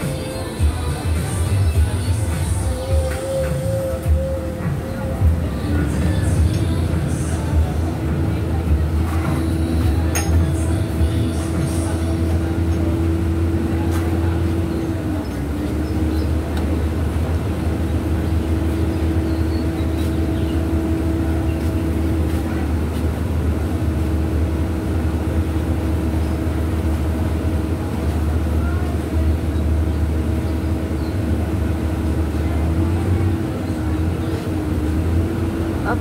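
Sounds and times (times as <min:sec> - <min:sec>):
low mechanical drone: 0:00.0 - 0:36.0.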